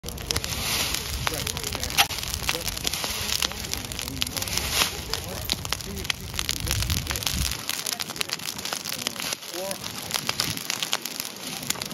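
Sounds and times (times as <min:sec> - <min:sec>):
brush fire crackling and popping: 0:00.0 - 0:11.9.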